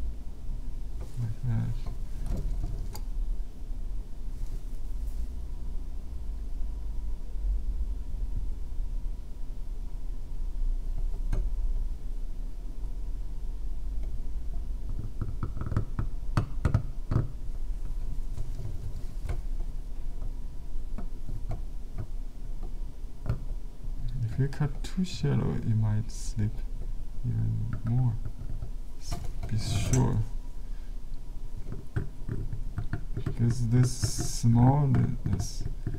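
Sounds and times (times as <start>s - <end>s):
steady low hum: 0.0s - 35.9s.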